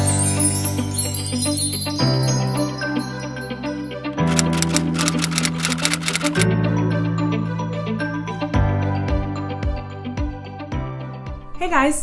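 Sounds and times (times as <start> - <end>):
typewriter key clicks: 4.2 - 6.5.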